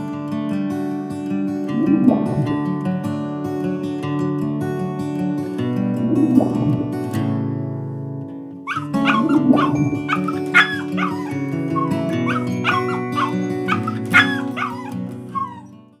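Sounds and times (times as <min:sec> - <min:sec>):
background music: 0:08.6 - 0:15.7
small dog yipping and barking: 0:08.7 - 0:15.7.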